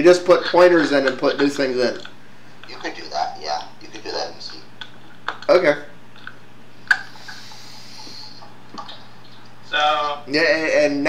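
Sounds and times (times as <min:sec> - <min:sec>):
low electrical hum: 0:00.0 - 0:11.0
person breathing out: 0:07.1 - 0:08.4.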